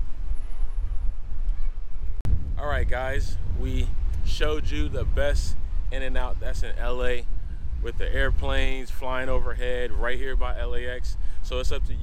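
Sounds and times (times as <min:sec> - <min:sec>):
low outdoor rumble: 0:00.0 - 0:12.0
man speaking: 0:02.6 - 0:07.2, 0:07.8 - 0:12.0.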